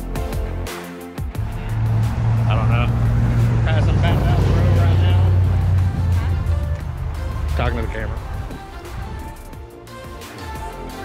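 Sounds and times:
people's voices: 1.4s - 8.9s
vehicle engine droning: 1.4s - 9.6s.

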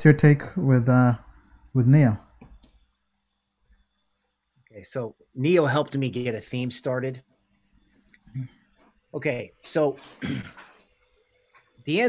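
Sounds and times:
man asking question: 0.0s - 1.2s, 1.8s - 2.2s, 4.8s - 7.2s.

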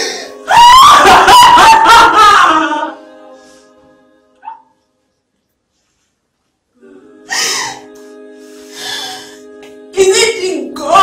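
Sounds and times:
background music: 0.0s - 6.0s, 6.6s - 11.0s
anguished wail: 0.4s - 3.0s
woman crying: 0.5s - 3.0s.

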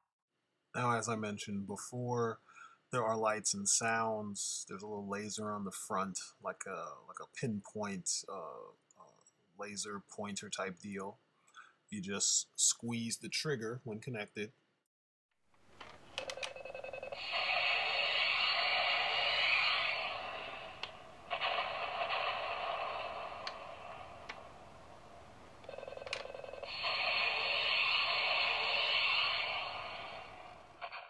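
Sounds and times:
toy jet electronic sound effects: 16.2s - 24.6s, 25.6s - 31.0s.

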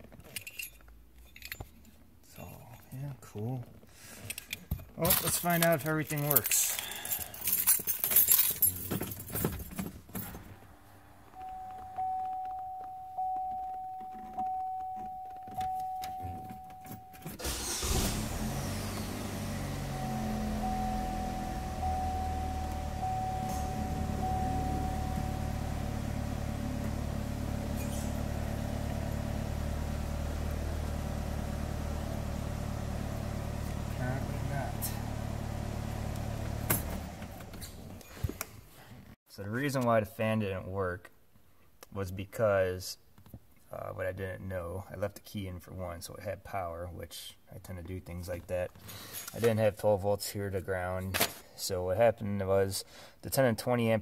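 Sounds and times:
car engine idling: 17.4s - 38.0s
steady high tone: 19.2s - 28.1s.

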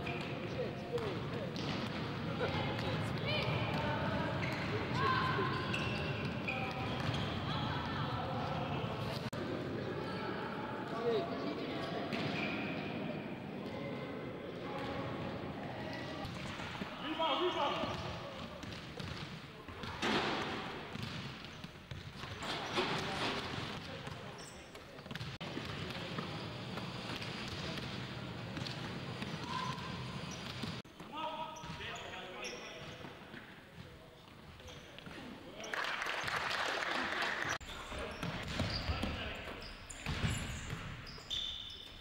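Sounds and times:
sneaker squeaks: 0.0s - 7.6s, 12.1s - 13.1s, 15.8s - 35.8s, 37.6s - 42.0s
players' voices: 0.0s - 20.9s.

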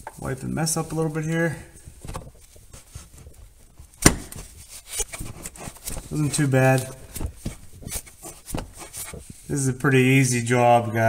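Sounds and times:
rag rubbing on metal: 4.8s - 9.5s.

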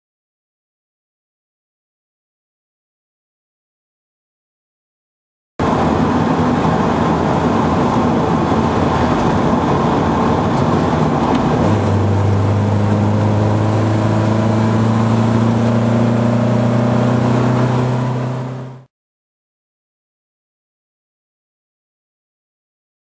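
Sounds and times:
car engine running steadily: 5.6s - 18.9s.

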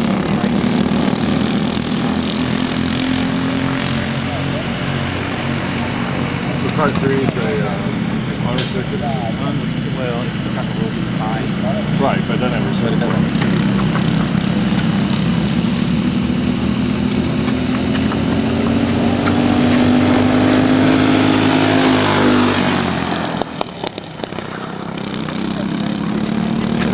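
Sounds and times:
racing kart engines passing: 0.0s - 26.9s.

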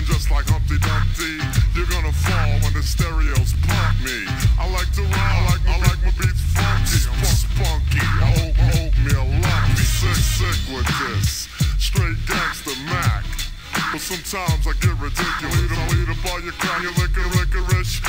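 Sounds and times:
heavy bass line and beat: 0.0s - 18.0s
slowed rap vocals: 0.0s - 18.0s.

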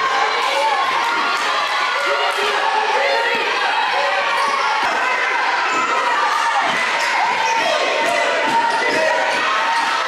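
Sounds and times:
people calling out: 0.0s - 10.0s.

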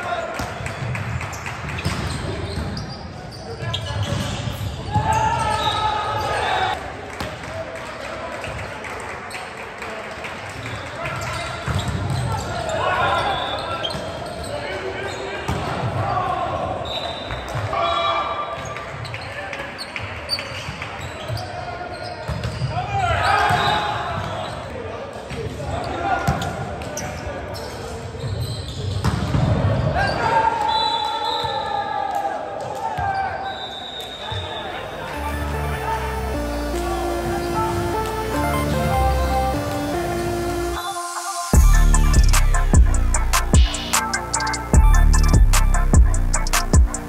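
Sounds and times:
players shouting and cheering: 4.7s - 6.9s, 29.9s - 47.0s.

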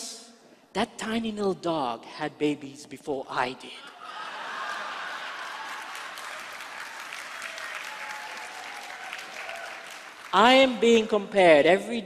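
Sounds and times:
audience applauding: 4.0s - 10.4s.

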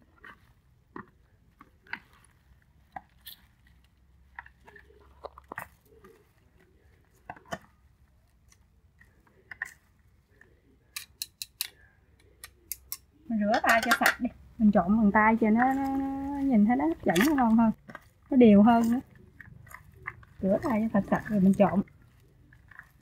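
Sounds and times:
chopsticks tossing salad: 0.0s - 11.7s, 12.7s - 23.0s
metal tongs clicking in bowl: 11.0s - 11.8s, 12.4s - 14.2s.

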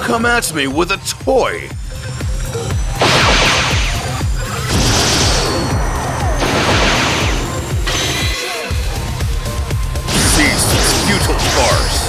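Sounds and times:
background music with low beat: 0.0s - 12.0s
blaster shots and impacts: 3.0s - 8.4s, 10.1s - 12.0s.

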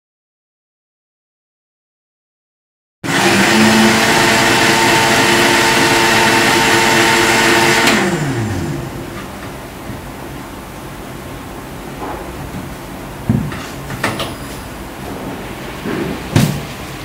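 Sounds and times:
motor winding down: 3.1s - 9.0s
electric blender running: 3.1s - 9.1s.

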